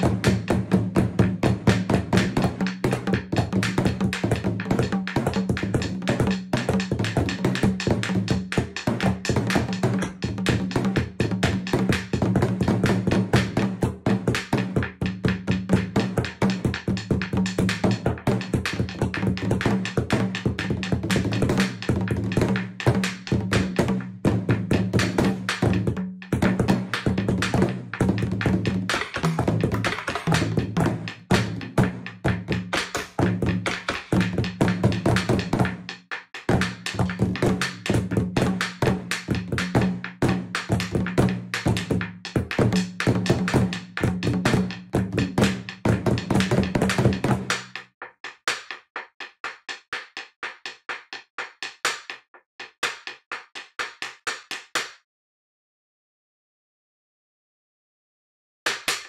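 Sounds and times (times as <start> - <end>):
taiko drums: 0.0 - 54.8.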